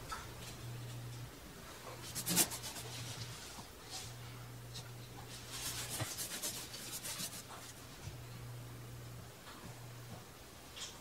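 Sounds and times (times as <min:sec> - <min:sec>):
low steady hum: 0:00.0 - 0:11.0
paintbrush swishing on wall: 0:02.0 - 0:04.1, 0:05.3 - 0:07.8.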